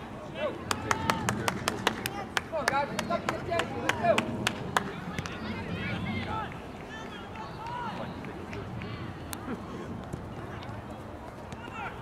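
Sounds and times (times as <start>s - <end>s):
sharp hand claps: 0.6s - 5.4s.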